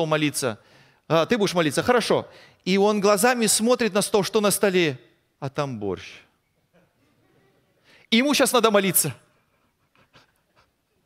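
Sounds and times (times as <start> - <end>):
man speaking: 0.0 - 6.3, 8.0 - 9.3.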